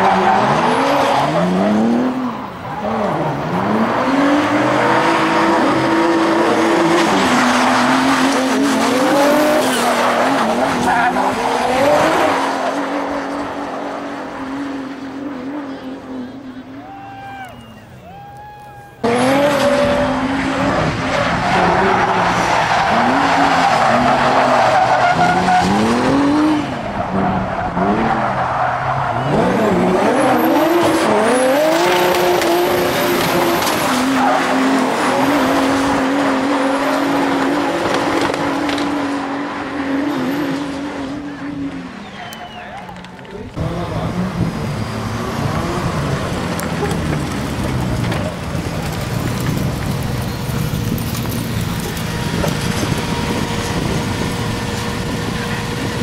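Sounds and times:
high-revving car engines: 0:00.0 - 0:17.4, 0:19.0 - 0:56.0.

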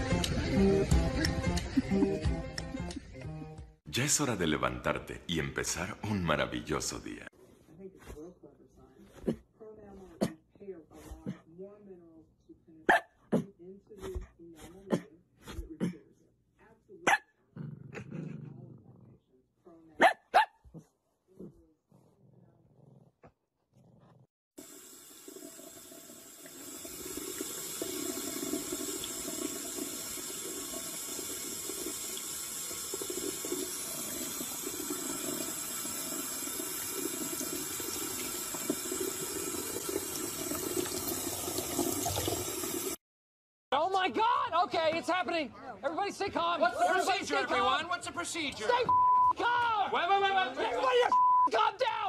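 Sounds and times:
faucet water splashing into sink: 0:24.6 - 0:43.0.

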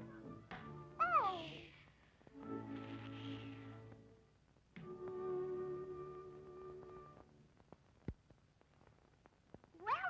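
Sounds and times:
high-pitched cartoon voice: 0:01.0 - 0:01.7, 0:09.8 - 0:10.0.

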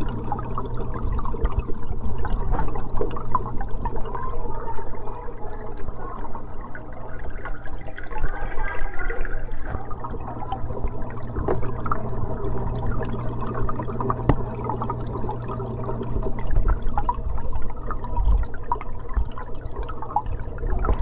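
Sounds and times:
aquarium water bubbling: 0:00.0 - 0:21.0
low pump hum: 0:00.0 - 0:21.0.

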